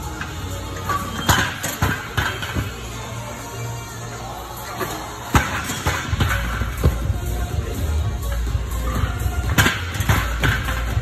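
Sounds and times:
music with bass beat: 6.1 - 11.0.

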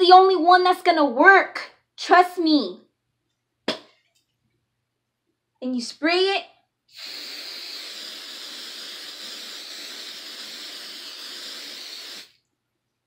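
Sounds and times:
aerosol hairspray hissing: 6.9 - 12.4.

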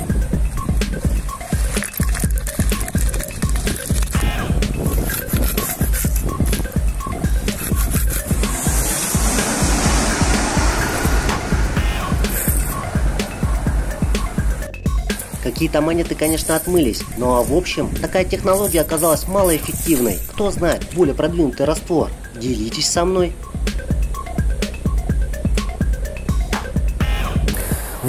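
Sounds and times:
background music with steady beat: 0.0 - 28.0
hissing swell: 4.8 - 17.2.

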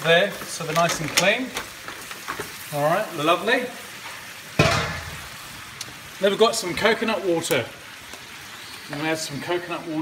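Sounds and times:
mussels sizzling in butter: 0.0 - 10.0.

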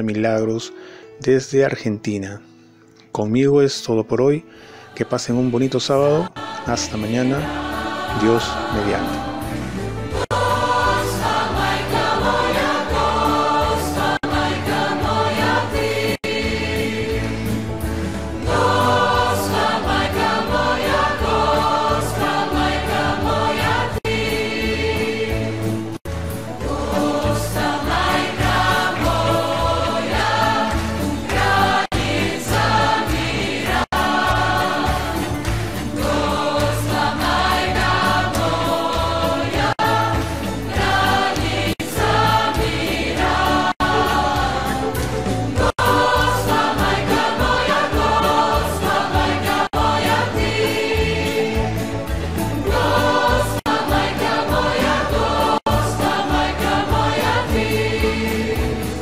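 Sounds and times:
choir singing a hymn: 4.6 - 59.0
instrumental backing: 7.0 - 59.0.

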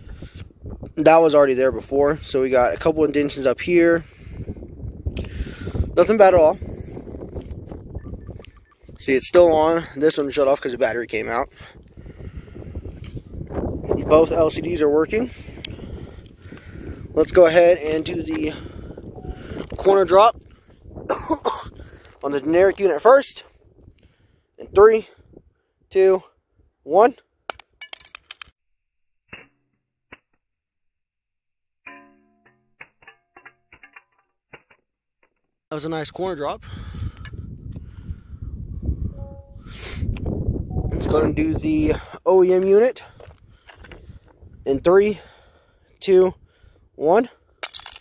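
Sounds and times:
wind rumble on microphone: 0.0 - 25.6, 35.9 - 45.5
phone clattering and skittering: 31.9 - 35.5.

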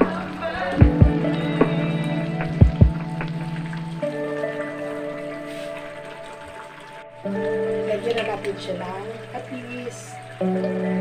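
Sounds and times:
woman talking: 7.8 - 10.2.

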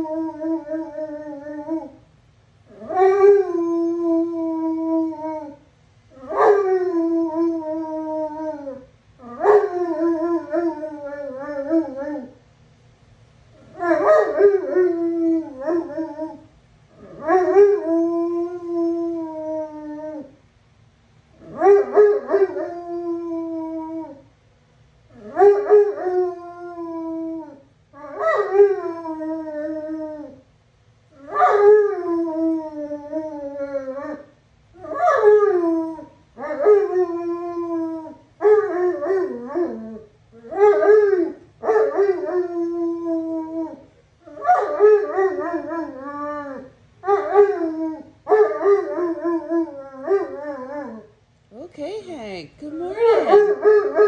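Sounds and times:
dog howling: 2.7 - 5.6, 6.2 - 12.4, 13.6 - 16.4, 17.0 - 20.4, 21.4 - 24.2, 25.2 - 30.4, 31.2 - 51.1, 52.8 - 54.0.

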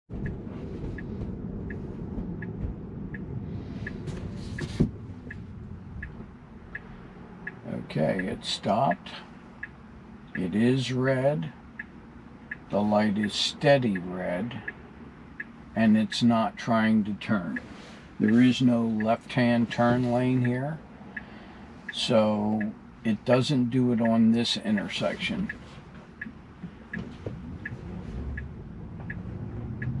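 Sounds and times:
low road noise: 0.1 - 30.0
turn signal ticking: 0.1 - 30.0.

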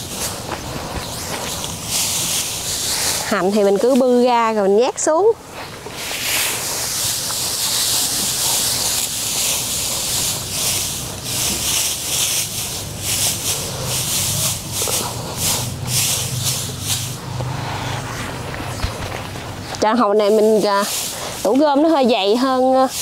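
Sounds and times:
dry straw rustling and crackling: 0.0 - 23.0.

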